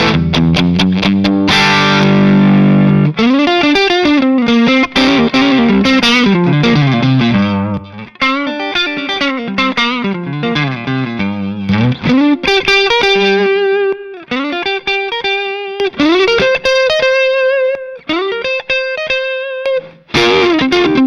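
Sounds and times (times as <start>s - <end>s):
electric guitar chord: 0.0s - 21.0s
electric guitar lead line: 0.0s - 21.0s.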